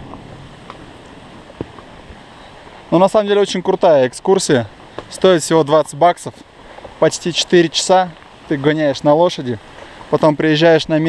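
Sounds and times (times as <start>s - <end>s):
horse hooves on stony trail: 0.0s - 11.0s
rain falling on foliage: 0.0s - 11.0s.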